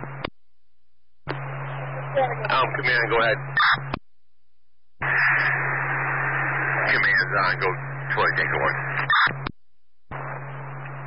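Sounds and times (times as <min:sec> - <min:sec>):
radio static hiss: 0:00.0 - 0:00.4, 0:01.2 - 0:04.0, 0:05.0 - 0:11.0
low steady hum: 0:00.0 - 0:11.0.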